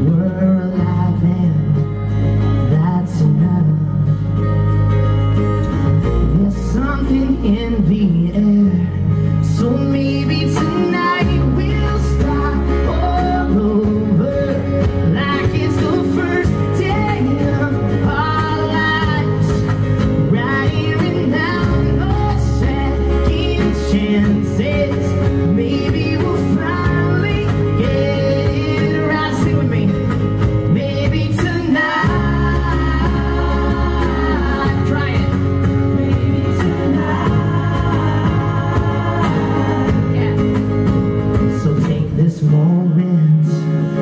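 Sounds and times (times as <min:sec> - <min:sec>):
man singing: 0:00.0 - 0:04.5, 0:06.0 - 0:44.0
bass guitar: 0:00.0 - 0:44.0
strummed acoustic guitars: 0:00.0 - 0:44.0.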